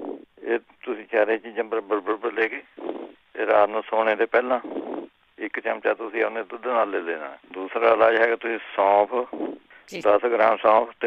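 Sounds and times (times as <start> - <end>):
person talking over telephone: 9.9 - 10.4.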